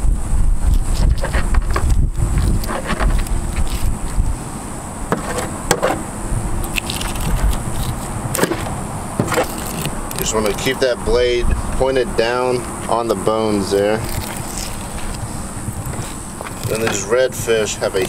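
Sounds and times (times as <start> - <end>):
steady low rumble: 0.0 - 18.0
knife scraping fish scales: 0.6 - 4.2, 6.6 - 10.8, 13.7 - 15.3.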